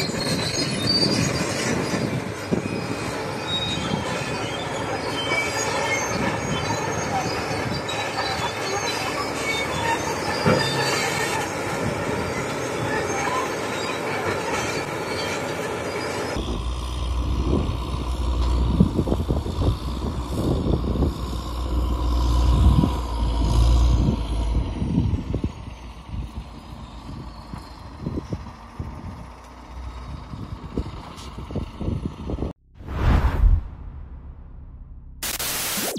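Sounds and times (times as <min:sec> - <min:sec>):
steel tracks squealing and clanking: 0:00.0 - 0:32.4
bulldozer engine: 0:00.0 - 0:32.7
wind buffeting microphone: 0:18.6 - 0:21.6, 0:30.0 - 0:32.5
whoosh: 0:32.8 - 0:35.9.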